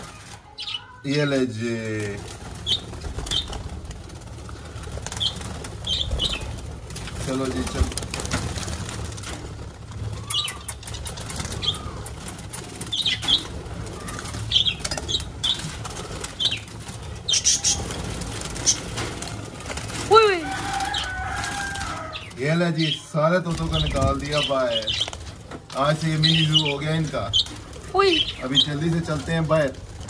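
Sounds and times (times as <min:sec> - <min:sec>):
wings flapping: 0:00.0 - 0:30.0.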